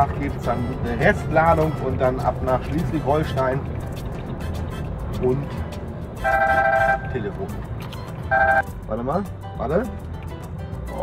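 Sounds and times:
truck cab hum: 0.0 - 10.9
phone ring tone: 6.2 - 7.1, 8.3 - 8.6.

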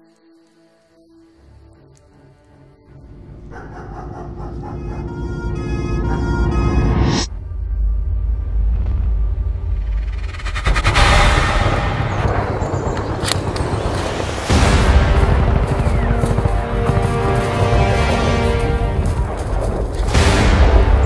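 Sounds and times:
sustained orchestral chords: 1.6 - 8.7
low rumbling drone: 3.0 - 17.3
sharp hit: 6.6 - 13.2
heavy boom: 7.2 - 16.2.

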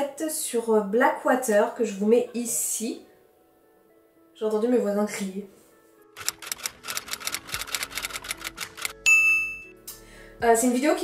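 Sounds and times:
typewriter key clacks: 6.2 - 9.0.

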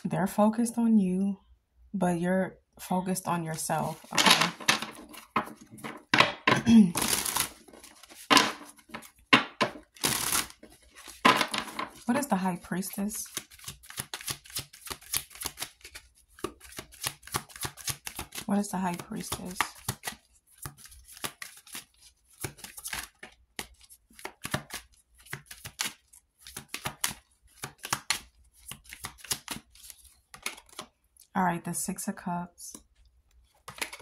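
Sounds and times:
cards shuffled by hand: 3.9 - 12.2, 13.2 - 31.0, 33.4 - 34.0.

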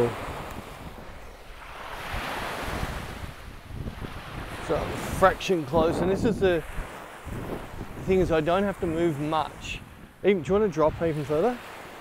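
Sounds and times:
wind buffeting microphone: 0.0 - 11.6
small waves washing on beach: 0.0 - 12.0.

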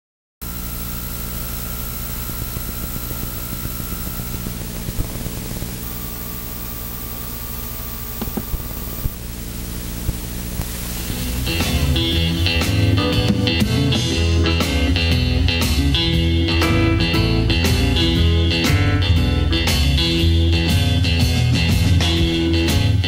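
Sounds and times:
faint high whine: 0.4 - 15.6
electrical hum and hiss: 0.4 - 21.5
electric blues guitar music: 10.2 - 23.0.

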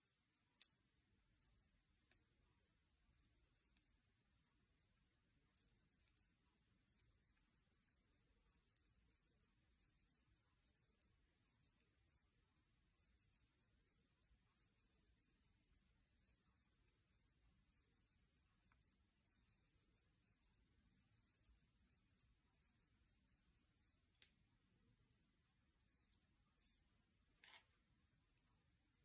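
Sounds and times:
knitting needles clicking: 0.3 - 2.3, 3.0 - 4.9, 5.5 - 12.2.

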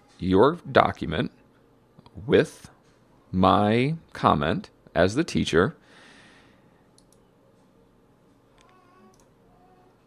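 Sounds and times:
computer mouse clicks: 7.0 - 7.2, 8.6 - 9.3.

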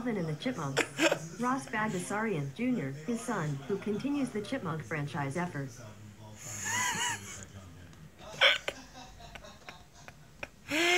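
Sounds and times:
person laughing: 6.6 - 7.4.

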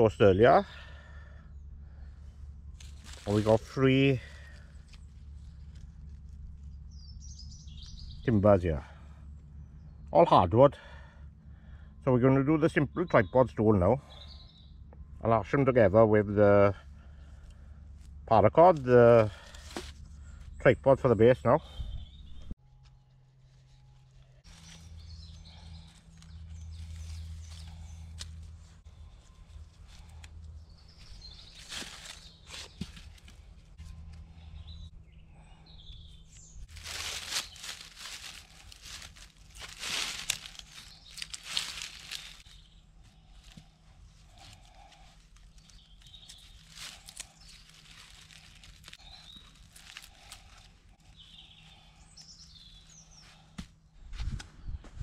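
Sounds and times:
dry leaves crackling: 2.6 - 8.0, 19.2 - 20.4, 23.0 - 34.2, 36.2 - 53.5
cord rustling and scraping: 19.5 - 20.1, 36.6 - 42.6, 43.3 - 51.9
faint bird chirps: 40.4 - 55.0.

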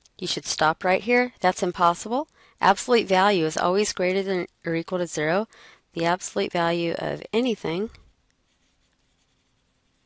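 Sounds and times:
stylus scratching on tablet: 1.5 - 10.0.

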